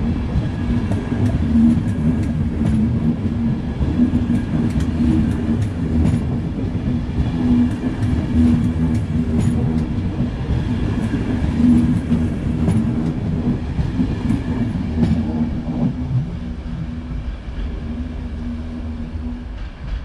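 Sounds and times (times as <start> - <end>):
train coaches rumbling past: 0.0 - 20.0
train wheel clicks: 0.2 - 16.0.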